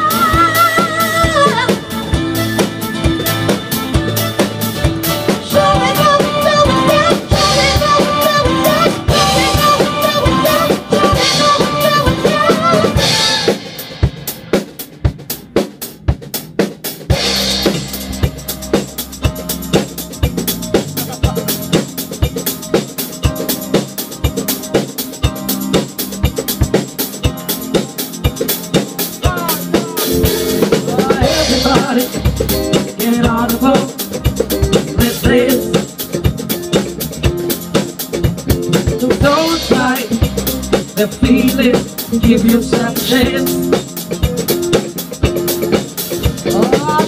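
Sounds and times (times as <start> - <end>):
woman singing with vibrato: 0.0 - 2.0, 5.4 - 13.6, 30.9 - 32.3, 33.0 - 34.0, 34.9 - 35.8, 38.8 - 40.3, 41.0 - 43.7
backing instruments: 0.0 - 47.0
drum kit: 0.0 - 47.0.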